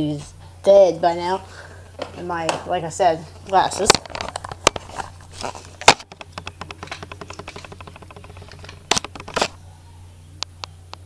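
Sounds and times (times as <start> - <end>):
steady low hum: 0.0 - 11.0
fast run of small clicks: 3.5 - 9.6
small objects knocking: 3.8 - 9.6.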